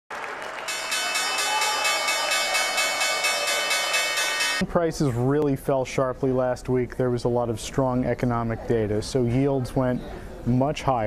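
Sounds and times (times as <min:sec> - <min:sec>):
applause: 0:00.1 - 0:02.1
bell ringing continuously: 0:00.6 - 0:04.6.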